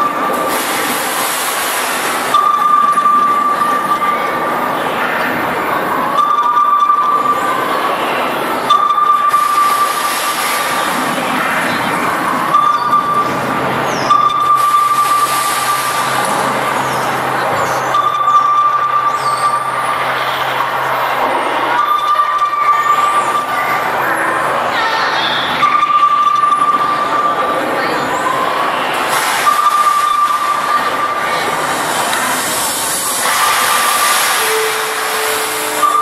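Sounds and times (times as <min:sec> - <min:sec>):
dense noisy rushing: 0:27.3 - 0:36.0.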